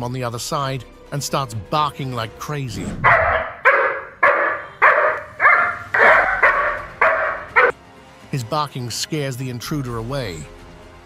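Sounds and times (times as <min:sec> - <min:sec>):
dog barking: 0:03.0 - 0:07.8.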